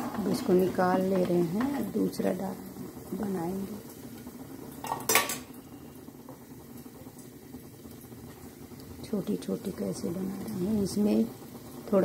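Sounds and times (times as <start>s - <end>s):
steel utensils clattering: 0.0s - 1.8s
hot oil bubbling: 0.0s - 12.0s.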